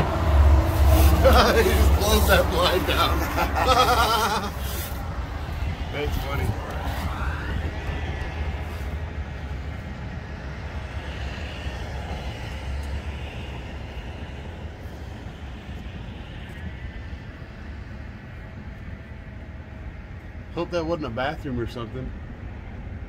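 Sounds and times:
road traffic rumble: 0.0s - 23.0s.

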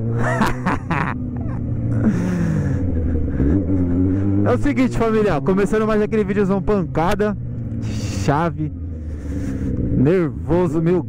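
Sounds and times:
person laughing: 0.0s - 4.1s
motorcycle engine while riding: 0.0s - 11.0s.

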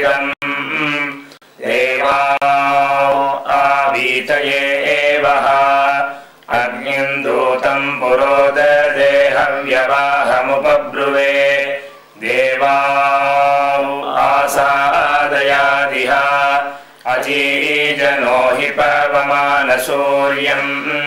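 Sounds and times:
man chanting: 0.0s - 21.0s.

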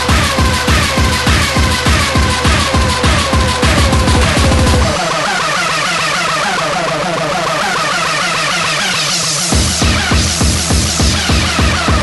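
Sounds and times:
repeating synthesizer glides: 0.8s - 12.0s
rising noise sweep: 3.6s - 6.7s.

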